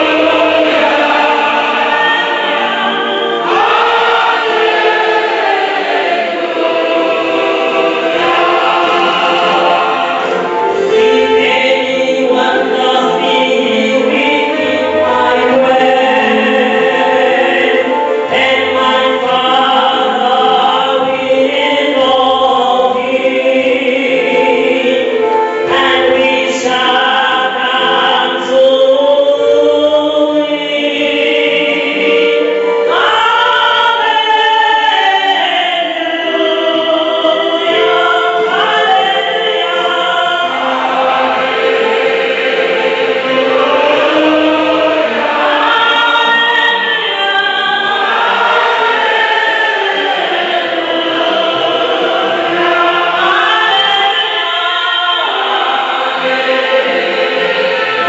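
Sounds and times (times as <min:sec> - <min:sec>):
congregation singing a hymn: 0:00.0 - 0:58.0
woman singing into microphone: 0:10.8 - 0:40.8, 0:43.6 - 0:56.1.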